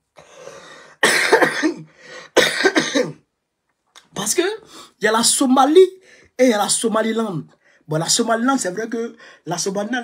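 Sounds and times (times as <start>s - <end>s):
man coughing: 1.0s - 3.3s.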